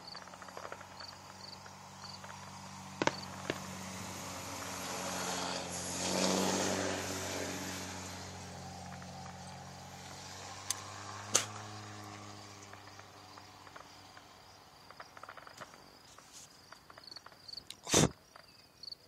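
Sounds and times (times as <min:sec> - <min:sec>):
sharp cracks: 0:00.0 - 0:07.0, 0:07.8 - 0:18.4
vehicle engine running: 0:00.0 - 0:15.6
vehicle passing rush: 0:00.0 - 0:16.0.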